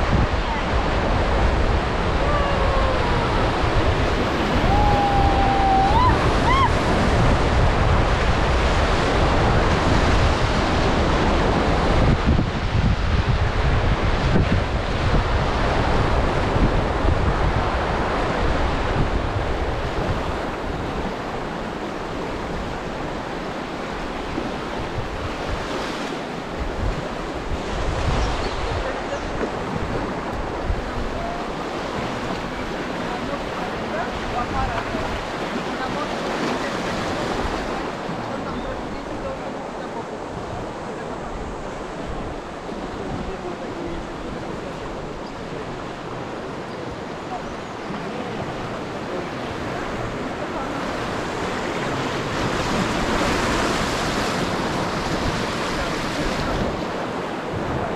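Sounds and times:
river rapids rushing: 0.0s - 12.2s, 13.5s - 57.9s
wind buffeting microphone: 0.0s - 57.9s.

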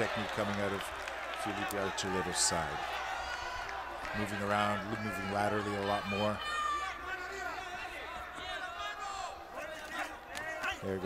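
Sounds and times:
man commentating: 0.0s - 2.8s, 4.1s - 11.0s
voices shouting: 1.3s - 11.0s.

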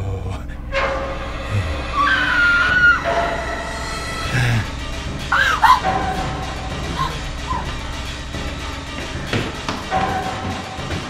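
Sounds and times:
woman screaming: 5.3s - 6.1s.

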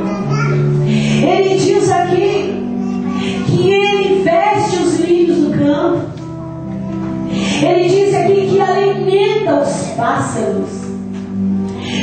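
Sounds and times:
held keyboard chords: 0.0s - 12.0s.

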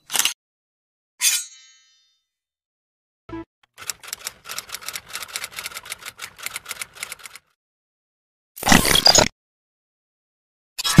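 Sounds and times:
fast mechanical clicking: 3.8s - 7.5s.

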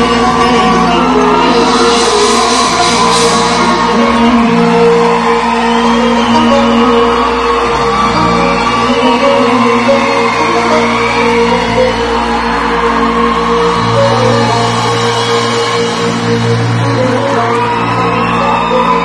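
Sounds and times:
audience shouting and whooping: 0.0s - 19.0s
live pop band playing: 0.0s - 19.0s.

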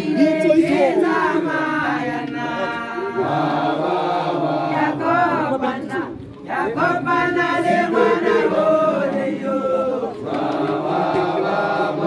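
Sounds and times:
group chanting: 0.0s - 12.0s.

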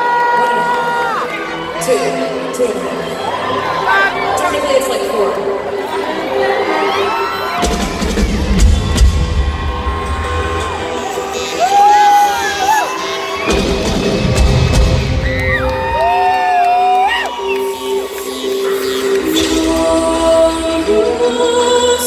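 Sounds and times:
crowd cheering and screaming: 0.0s - 22.0s
live rock band playing: 7.6s - 15.9s.

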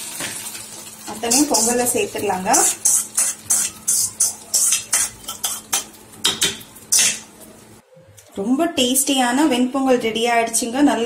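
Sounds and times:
metal spoon scraping a pot: 1.1s - 7.3s.

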